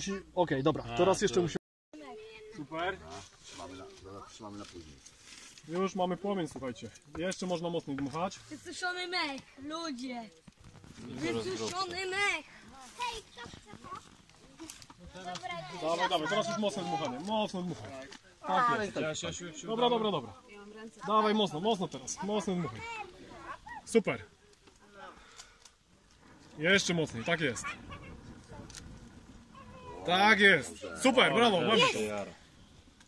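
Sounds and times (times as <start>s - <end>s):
people's voices: 9.3s - 32.6s.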